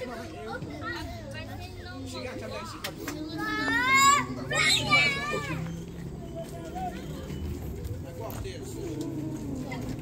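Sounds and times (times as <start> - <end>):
low crowd murmur: 0.0 - 10.0.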